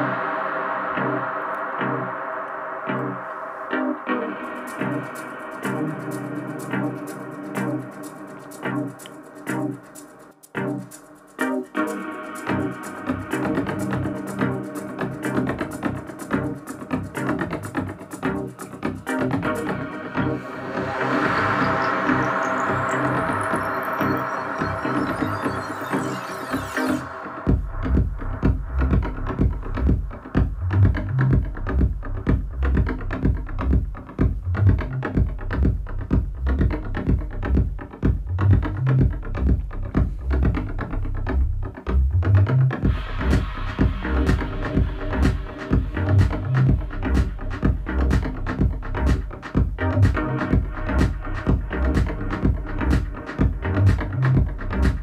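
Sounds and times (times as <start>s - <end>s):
rising synth sweep: 0.0s - 29.9s, 42.8s - 55.0s
synth chords: 0.0s - 41.0s, 42.8s - 55.0s
kick drum and bass house beat: 4.2s - 55.0s
hi-hats: 4.3s - 23.9s.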